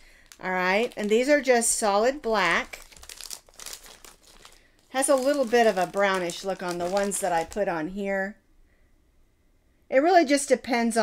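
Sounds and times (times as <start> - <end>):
plastic packaging crinkling: 0.0 - 8.0.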